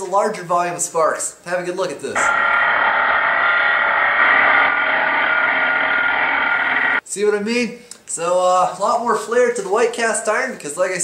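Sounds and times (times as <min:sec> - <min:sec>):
angle grinder grinding metal: 0:02.2 - 0:07.0.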